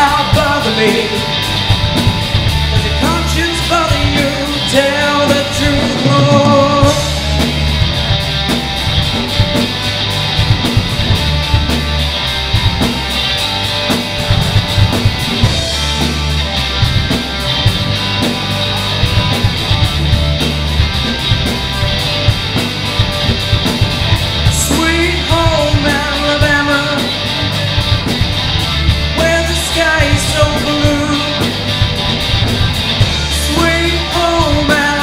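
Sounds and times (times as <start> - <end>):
bass guitar: 0.0 - 35.0
drum kit beat: 0.0 - 35.0
electric guitars: 0.0 - 35.0.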